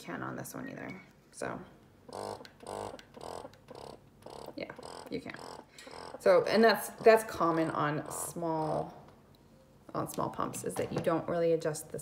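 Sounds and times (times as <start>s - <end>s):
breast pump motor whirring: 2.1s - 8.7s.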